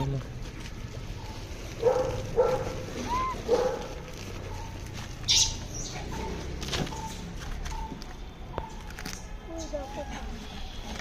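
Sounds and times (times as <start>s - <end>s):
animal yelps: 2.4s - 3.9s
animal shriek: 3.0s - 3.4s
animal squeak: 3.0s - 3.5s, 4.5s - 6.4s.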